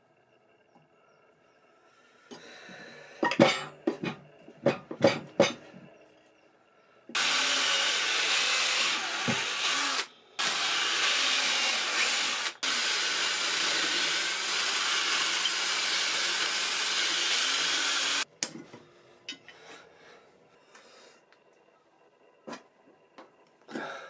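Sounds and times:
cordless drill boring wood: 7.2 - 18.3.

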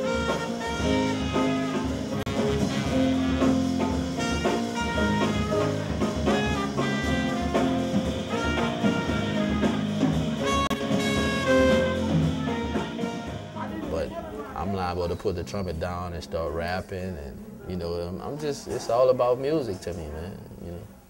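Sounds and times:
live band with drum kit: 0.0 - 14.3
trumpet playing fast jazz: 0.0 - 15.9.

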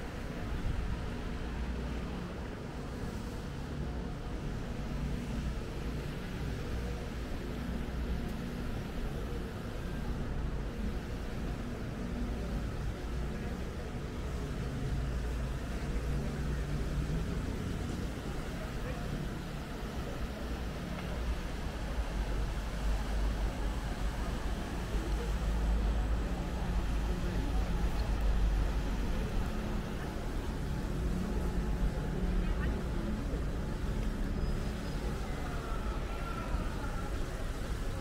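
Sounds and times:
passers-by talking: 0.0 - 38.0
steady low street rumble: 0.0 - 38.0.

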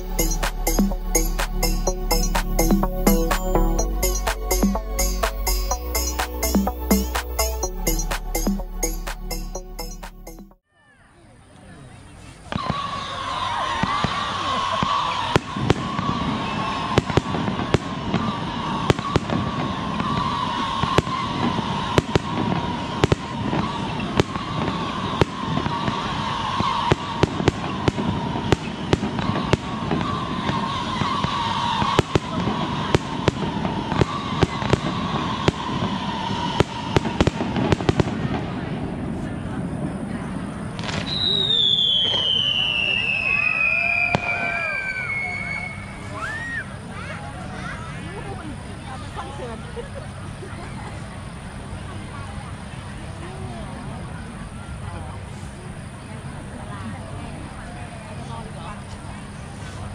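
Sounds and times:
steady tone: 0.0 - 10.6
long falling whistle: 12.8 - 37.6, 41.0 - 46.8
fireworks bangs and pops: 14.8 - 39.2, 40.7 - 43.4.

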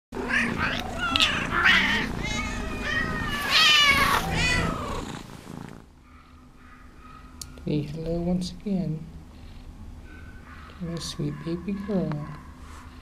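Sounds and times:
cat meowing: 0.2 - 5.1
cat purring: 0.2 - 5.9.

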